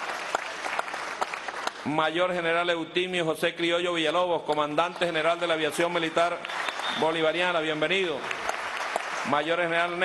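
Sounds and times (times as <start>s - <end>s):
crowd applauding: 0.0s - 2.0s, 4.8s - 10.0s.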